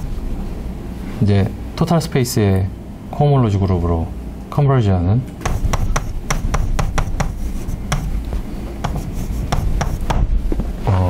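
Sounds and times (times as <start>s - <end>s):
steady low hum: 0.0s - 11.0s
chalk tapping and scraping on chalkboard: 5.4s - 10.2s.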